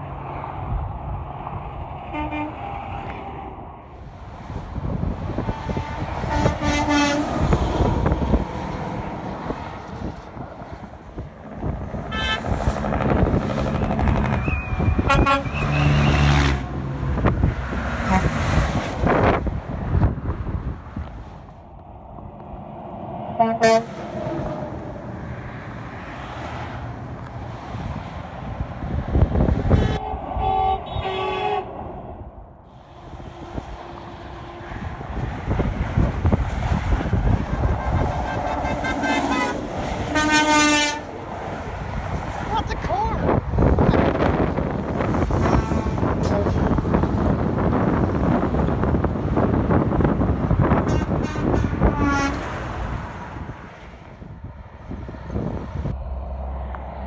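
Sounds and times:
trucks passing on highway: 0.0 - 57.0
truck air horn blasts: 2.1 - 2.8, 5.5 - 7.6, 12.1 - 12.6, 14.6 - 16.6, 18.0 - 18.5, 23.4 - 24.0, 29.7 - 31.8, 37.8 - 41.1, 45.3 - 46.6, 50.8 - 52.6.

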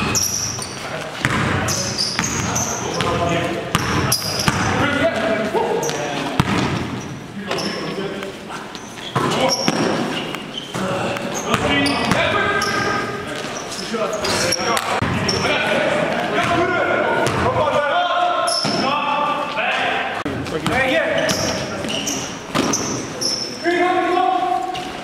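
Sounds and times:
basketball bouncing on gym floor: 0.0 - 4.8, 5.9 - 7.1, 11.4 - 12.4, 17.2 - 17.6
shoe squeaks: 0.0 - 4.8, 5.7 - 15.6, 18.4 - 19.5, 20.8 - 23.8
players calling out: 0.0 - 25.0.

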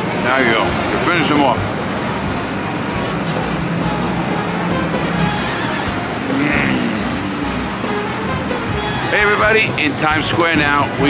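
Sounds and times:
background music: 0.0 - 11.0
city street traffic: 0.0 - 11.0.

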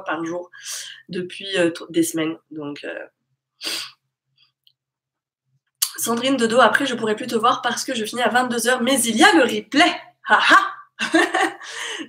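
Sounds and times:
woman's breathy nasal burst: 3.6 - 4.0.

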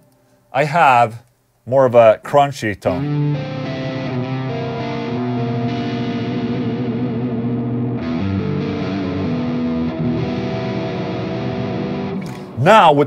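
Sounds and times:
distorted electric guitar chords: 3.0 - 12.6.

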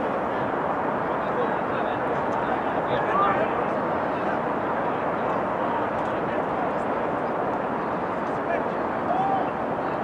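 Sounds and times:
outdoor background roar: 0.0 - 10.0.

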